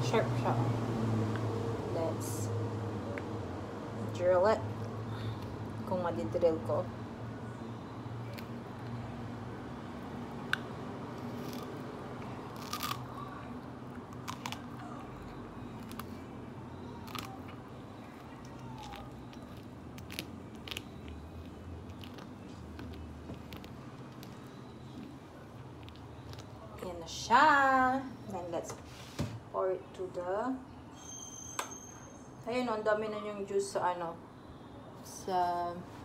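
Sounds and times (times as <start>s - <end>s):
juicer crunching into lemon: 10.5s - 13.3s, 14.0s - 16.2s, 17.0s - 17.6s, 18.4s - 26.6s.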